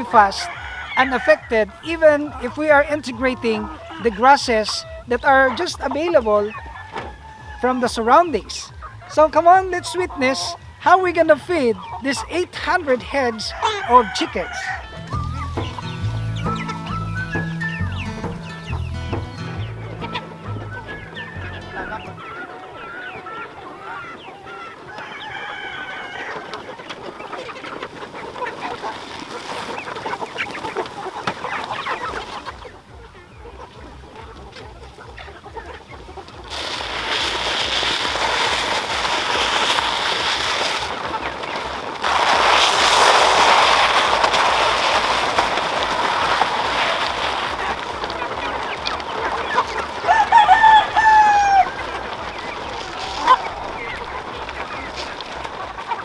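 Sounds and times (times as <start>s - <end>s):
chickens clucking: 0.0s - 56.0s
rooster crowing: 0.4s - 1.6s, 6.6s - 7.6s, 13.5s - 15.0s, 24.9s - 26.5s, 50.0s - 51.8s
loud rustling hiss: 36.5s - 41.1s, 41.9s - 47.8s.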